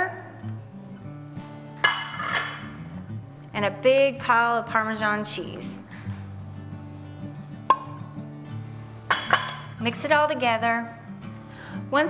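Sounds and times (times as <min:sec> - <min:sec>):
background music: 0:00.0 - 0:12.0
plate clinking on stone: 0:01.8 - 0:02.7, 0:09.1 - 0:09.7.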